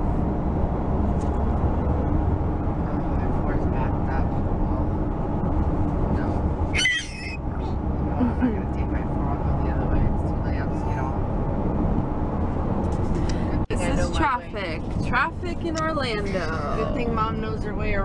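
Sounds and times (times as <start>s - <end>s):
road and engine rumble: 0.0s - 18.0s
high-pitched squeal: 6.7s - 7.4s.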